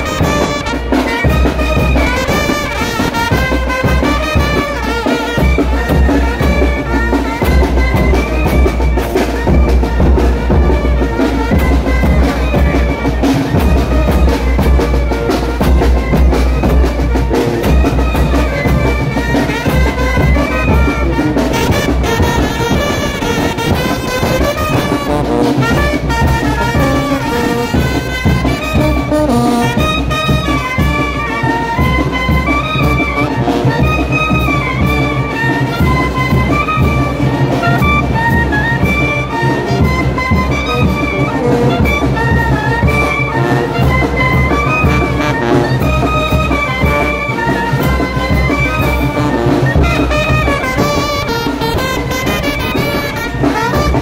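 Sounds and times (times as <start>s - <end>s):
bass drum: 0.0s - 4.8s, 5.8s - 31.0s
snare drum: 0.0s - 54.0s
trumpets and clarinets melody: 0.0s - 54.0s.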